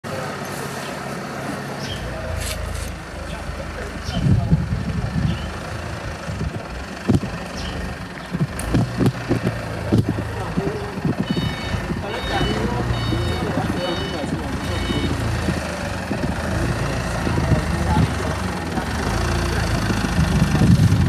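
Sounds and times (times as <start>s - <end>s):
forklift engine droning: 0.0s - 21.0s
people talking: 0.0s - 21.0s.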